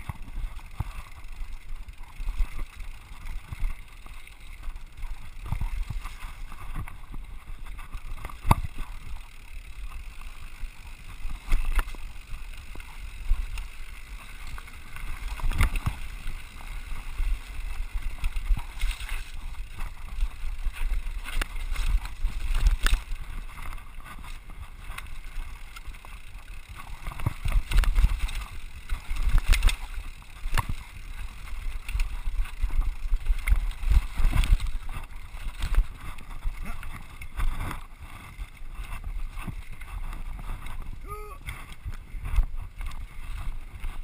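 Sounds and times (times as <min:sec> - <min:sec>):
bike knocks and rattles: 0:00.0 - 0:44.0.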